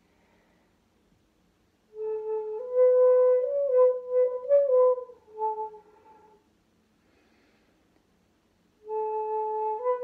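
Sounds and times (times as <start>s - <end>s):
bamboo flute playing held notes: 1.9s - 6.4s, 8.8s - 10.0s.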